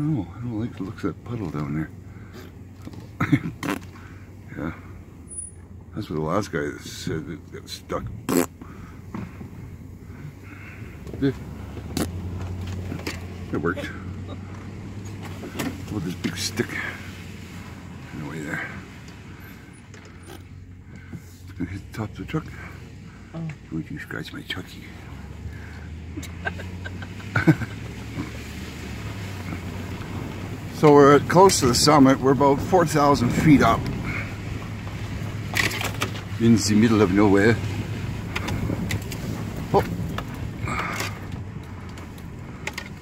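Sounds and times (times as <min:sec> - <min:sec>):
low engine hum: 0:00.0 - 0:43.0
cab creaks and clicks: 0:00.6 - 0:04.2, 0:08.0 - 0:16.8, 0:18.4 - 0:21.3, 0:29.2 - 0:43.0.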